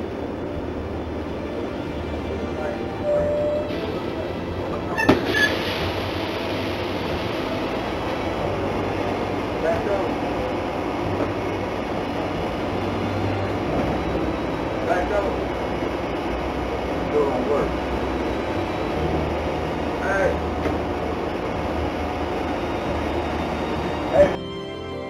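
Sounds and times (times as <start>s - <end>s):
bus engine and road rumble: 0.0s - 25.0s
faint passenger voices: 0.0s - 25.0s.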